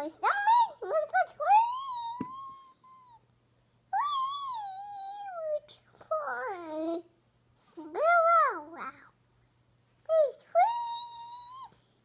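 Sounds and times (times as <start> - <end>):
toddler vocalising woo: 1.6 - 3.2.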